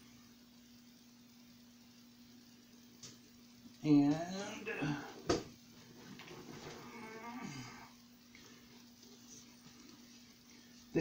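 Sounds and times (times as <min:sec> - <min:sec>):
faint steady hum: 0:00.0 - 0:11.0
person groaning: 0:04.5 - 0:05.2, 0:06.8 - 0:08.0.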